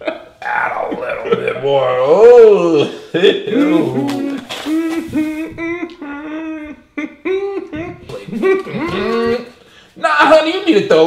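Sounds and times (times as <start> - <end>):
man humming: 3.6 - 9.5.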